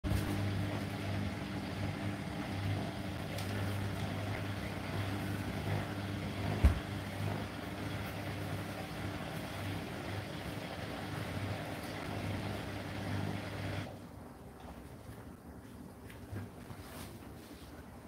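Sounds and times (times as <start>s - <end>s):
washing machine motor hum: 0.0s - 15.6s
dull thump: 6.6s - 6.9s.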